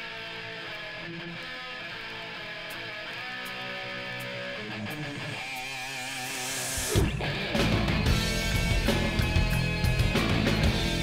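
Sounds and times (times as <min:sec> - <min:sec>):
electric guitar playing: 0:00.0 - 0:11.0
hard rock band playing: 0:00.1 - 0:11.0.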